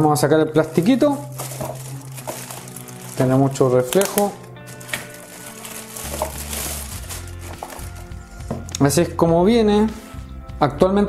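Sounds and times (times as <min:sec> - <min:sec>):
plastic bag crinkling: 0:00.6 - 0:08.4.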